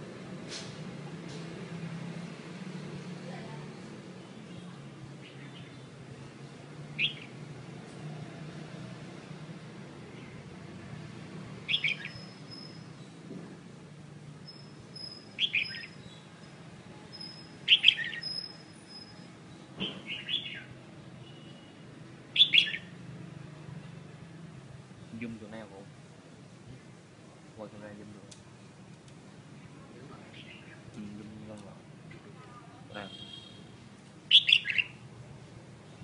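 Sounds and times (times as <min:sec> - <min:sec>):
songbird chirping: 0:03.0 - 0:07.5, 0:11.5 - 0:13.3, 0:14.4 - 0:21.7, 0:22.3 - 0:23.0, 0:29.6 - 0:31.0, 0:34.3 - 0:35.1.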